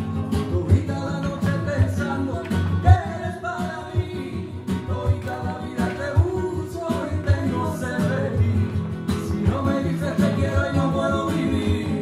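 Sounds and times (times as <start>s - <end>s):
flamenco guitars: 0.0s - 12.0s
person singing: 0.0s - 12.0s.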